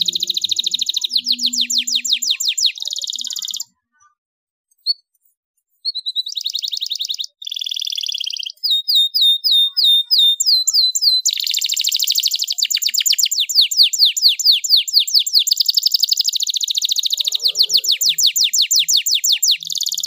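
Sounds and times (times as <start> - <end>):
canary singing rapid trills: 0.0 - 3.8, 5.8 - 20.0.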